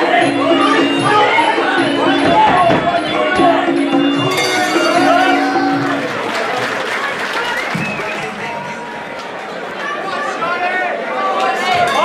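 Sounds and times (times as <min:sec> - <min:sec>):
crowd talking and calling out: 0:00.0 - 0:12.0.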